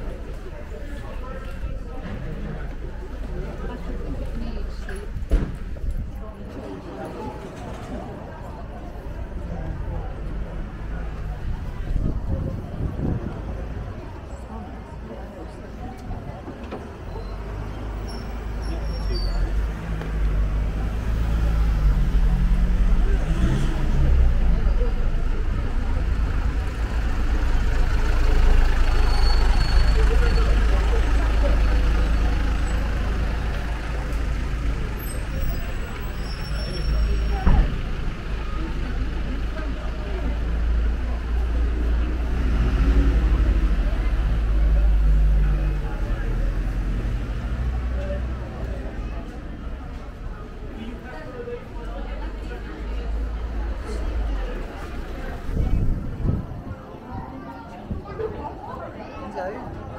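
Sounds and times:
low rumble of traffic: 0:00.0 - 0:59.9
people chatting: 0:00.0 - 0:59.9.

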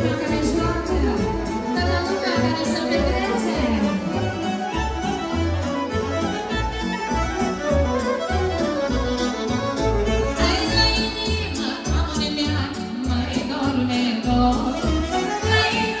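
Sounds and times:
fiddle melody: 0:00.0 - 0:13.4, 0:14.3 - 0:16.0.

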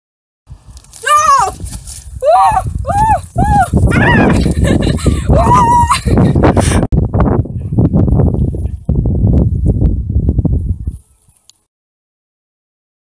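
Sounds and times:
wind rumble on microphone: 0:00.5 - 0:11.5
woman whooping: 0:01.0 - 0:01.6, 0:02.2 - 0:04.7, 0:05.3 - 0:06.2.

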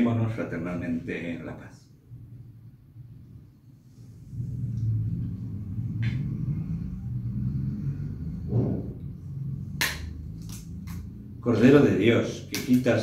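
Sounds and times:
low rumble: 0:02.0 - 0:12.0.

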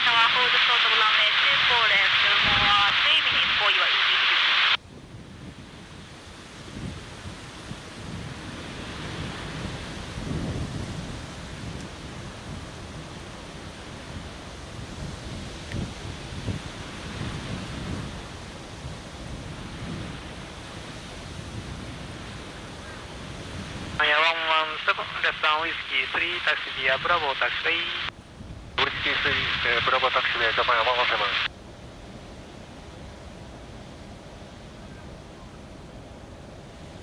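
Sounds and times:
wind buffeting microphone: 0:04.8 - 0:24.0.

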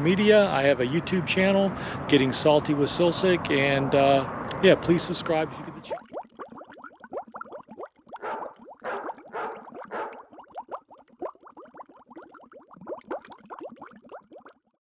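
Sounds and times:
water bubbling: 0:05.7 - 0:14.7.

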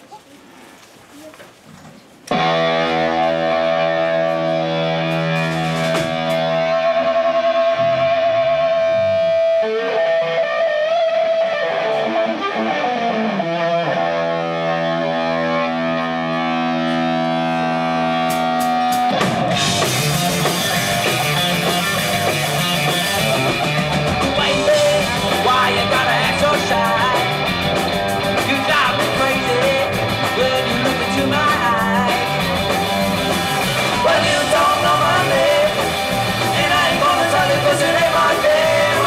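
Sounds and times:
room murmur: 0:00.0 - 0:06.7
distorted electric guitar chord: 0:02.3 - 0:39.0.

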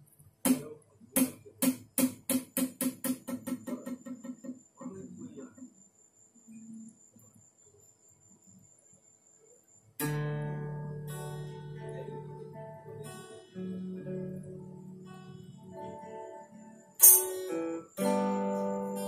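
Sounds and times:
sharp ringing knocks: 0:00.5 - 0:04.7
faint high-pitched whine: 0:03.3 - 0:19.0.

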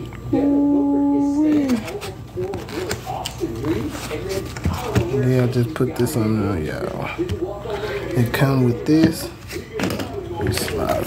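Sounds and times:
murmured voice: 0:00.0 - 0:09.8
person humming: 0:00.1 - 0:01.9.

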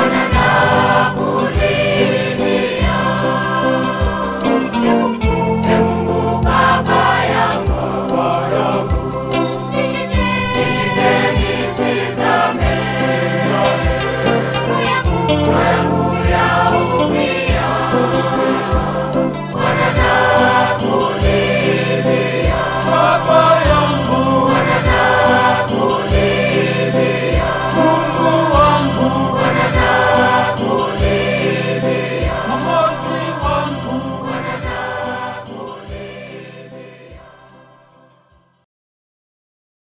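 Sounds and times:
choir singing gospel: 0:00.0 - 0:38.3.

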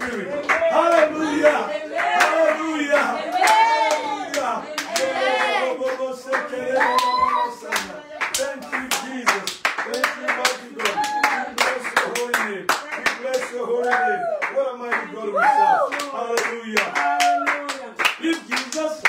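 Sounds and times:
people clapping hands: 0:00.0 - 0:19.0.

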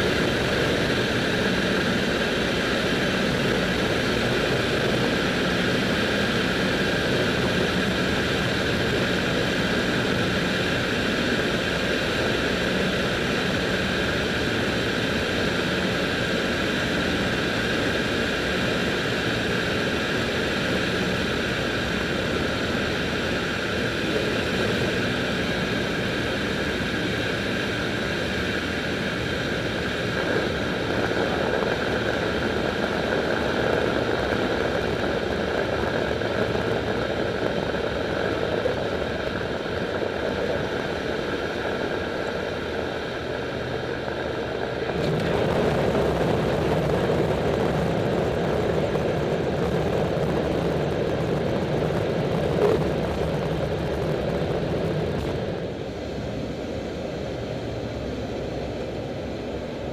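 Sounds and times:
propeller engines droning: 0:00.0 - 0:59.9.

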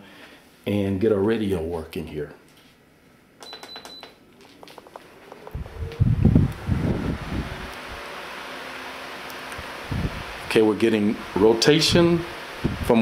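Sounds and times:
fan blowing air: 0:04.4 - 0:13.0
low thumps: 0:05.5 - 0:07.7.

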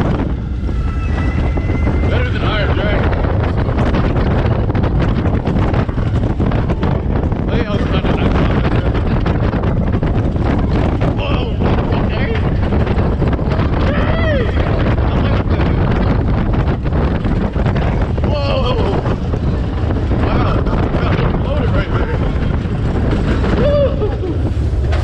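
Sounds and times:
roller coaster rumbling on track: 0:00.0 - 0:25.0
wind buffeting microphone: 0:00.0 - 0:25.0.

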